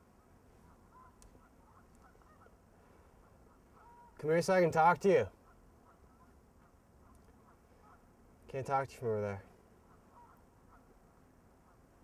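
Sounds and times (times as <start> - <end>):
short birdlike calls: 0.0 - 4.3, 5.2 - 8.2, 9.5 - 12.0.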